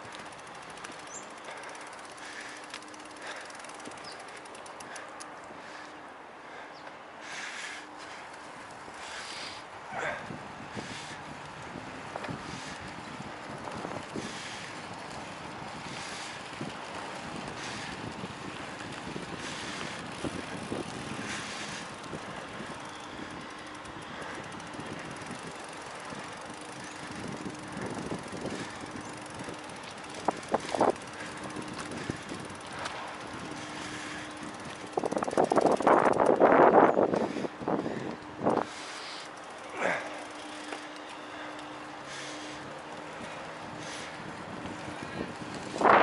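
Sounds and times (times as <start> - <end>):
muddy wheel grinding and scraping: 0.0 - 5.1, 8.0 - 46.0
bicycle tyres rumbling on dirt: 0.0 - 5.8, 6.4 - 46.0
wind on microphone: 43.6 - 46.0.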